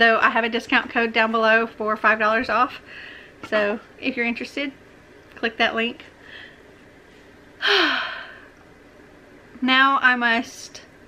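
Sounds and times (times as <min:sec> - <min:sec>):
woman sighing: 0:07.6 - 0:08.5.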